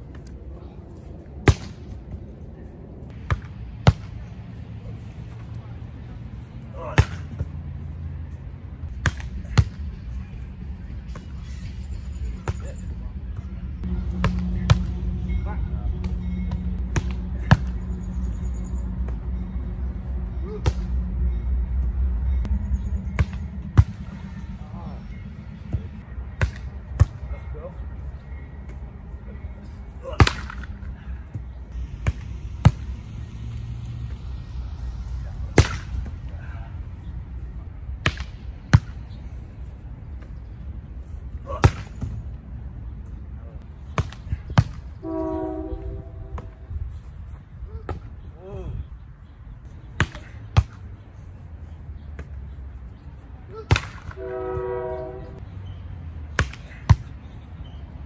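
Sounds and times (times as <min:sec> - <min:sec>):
balls hitting the ground: 0:01.0 - 0:02.4, 0:03.1 - 0:04.4, 0:06.8 - 0:07.7, 0:08.8 - 0:11.6, 0:12.3 - 0:15.1, 0:16.0 - 0:17.8, 0:20.5 - 0:21.0, 0:23.1 - 0:25.0, 0:25.6 - 0:27.6, 0:29.6 - 0:33.0, 0:35.4 - 0:36.5, 0:38.0 - 0:39.2, 0:41.4 - 0:42.3, 0:43.8 - 0:45.0, 0:47.3 - 0:48.8, 0:49.8 - 0:50.9, 0:52.0 - 0:52.5, 0:53.5 - 0:54.2, 0:56.3 - 0:57.3.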